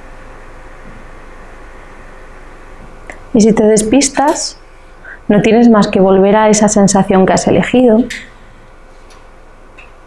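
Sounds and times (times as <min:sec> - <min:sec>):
woman's voice: 0:03.3 - 0:08.2.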